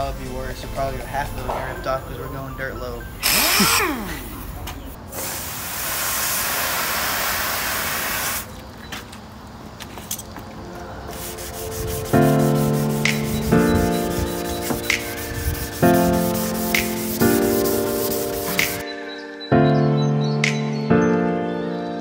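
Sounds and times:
background music: 0:00.0 - 0:04.1, 0:10.7 - 0:22.0
compressed air hissing: 0:03.2 - 0:08.5, 0:11.1 - 0:18.8
sanding block rubbing metal: 0:11.1 - 0:18.8.

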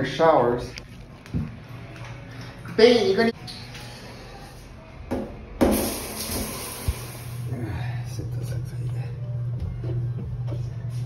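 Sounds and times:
shower water spraying: 0:05.7 - 0:07.5
low steady hum: 0:06.7 - 0:11.0.

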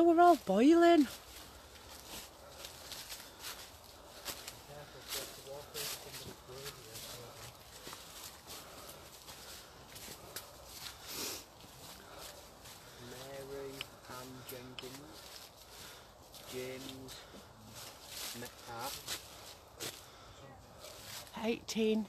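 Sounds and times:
footsteps on dry leaves and twigs: 0:00.0 - 0:22.0.

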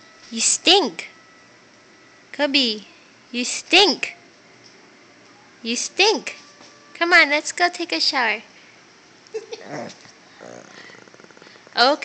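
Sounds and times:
small dog grumbling: 0:09.5 - 0:11.8.

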